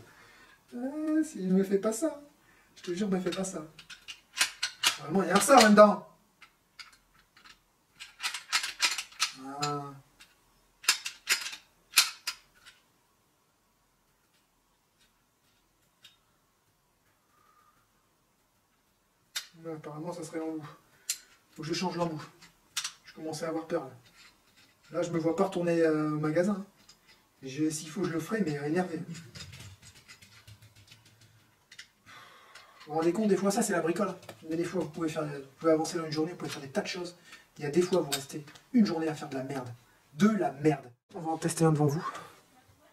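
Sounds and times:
rivet gun metal parts clicking: 2.8s - 5.8s, 6.4s - 9.4s, 10.2s - 12.8s, 18.5s - 19.6s, 21.0s - 23.2s, 24.0s - 24.9s, 26.7s - 27.3s, 29.0s - 33.1s.

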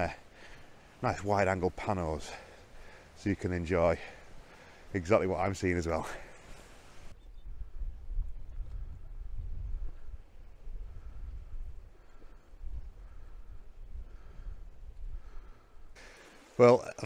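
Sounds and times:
faint outdoor noise: 0.0s - 17.0s
wind buffeting microphone: 6.7s - 16.0s.

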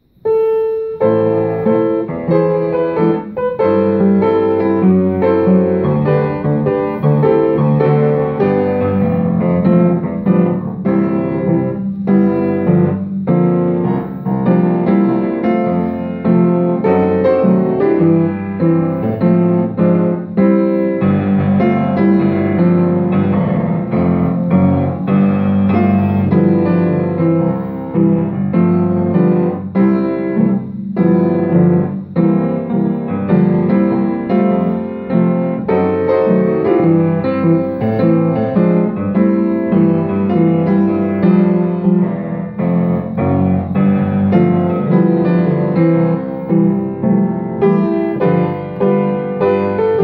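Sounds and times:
upright piano playing: 0.0s - 50.0s.

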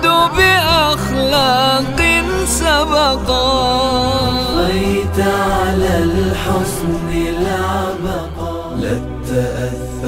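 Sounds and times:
low sustained vocal drone: 0.0s - 10.0s
male voices singing long notes: 0.0s - 10.0s.

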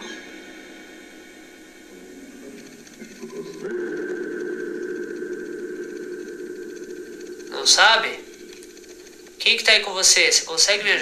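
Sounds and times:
radio hiss: 0.0s - 11.0s
steady electronic tones: 0.0s - 11.0s.

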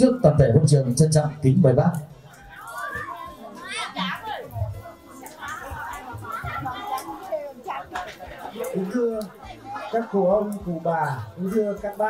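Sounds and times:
background voices of guests: 0.0s - 12.0s
children calling out: 2.3s - 10.1s.

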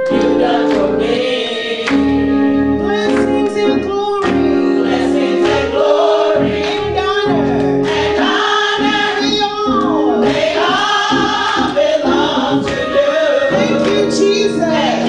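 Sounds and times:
gospel choir singing: 0.0s - 15.0s
instrumental accompaniment: 0.0s - 15.0s
rhythmic bass line: 1.9s - 15.0s.

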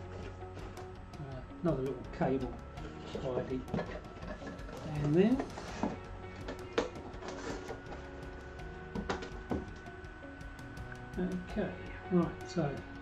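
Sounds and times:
soft background music: 0.0s - 13.0s
microphone and box knocking: 8.9s - 9.8s.

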